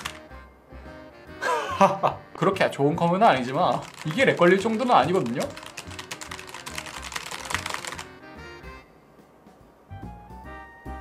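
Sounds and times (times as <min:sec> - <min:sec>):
background music: 0:00.0 - 0:11.0
fast typing on keyboard: 0:03.3 - 0:08.2.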